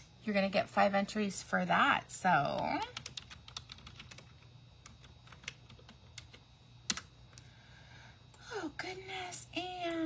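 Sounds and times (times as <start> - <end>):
computer keyboard typing: 2.5 - 7.1.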